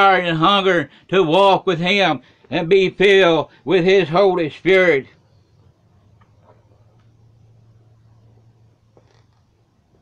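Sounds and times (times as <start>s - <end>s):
steady low hum: 1.9s - 10.0s.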